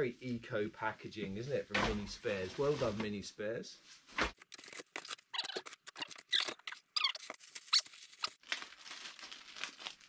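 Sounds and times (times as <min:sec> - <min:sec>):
short high squeaks: 0:05.1 - 0:08.1
shredded paper rustling: 0:07.2 - 0:10.0.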